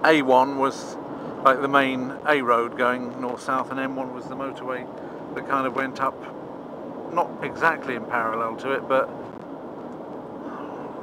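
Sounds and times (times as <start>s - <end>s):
car interior driving drone: 0.0s - 11.0s.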